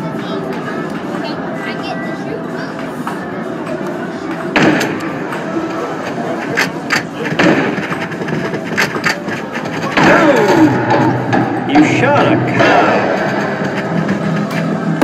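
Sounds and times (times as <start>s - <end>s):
arcade music and game noise: 0.0s - 15.0s
gunshot sound effects: 4.6s - 5.0s.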